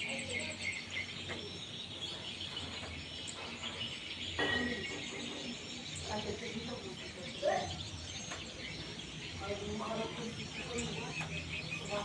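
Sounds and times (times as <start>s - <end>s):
birds chirping: 0.0s - 12.0s
insects trilling: 0.0s - 12.0s.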